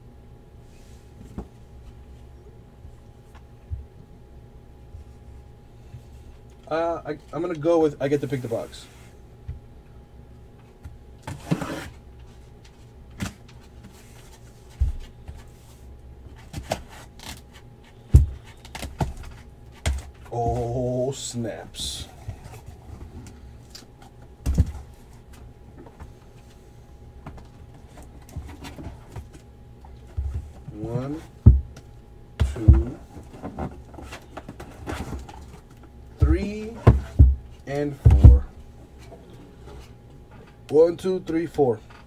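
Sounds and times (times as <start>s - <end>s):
hand scraping cardboard box: 11.3s - 12.0s.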